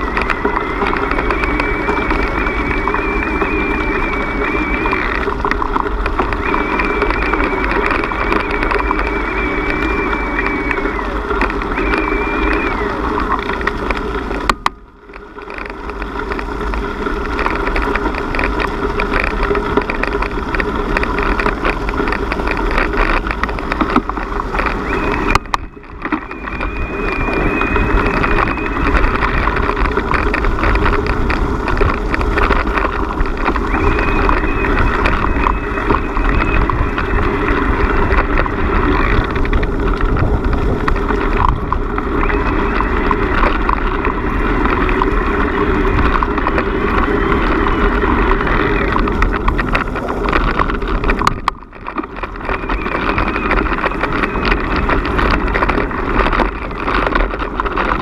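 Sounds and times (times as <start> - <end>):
tyres rumbling on gravel: 0.0 - 58.0
wind on microphone: 0.0 - 58.0.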